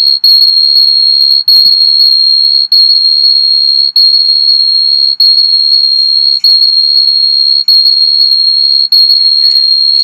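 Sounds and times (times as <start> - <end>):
microphone feedback squeal: 0.0 - 10.0.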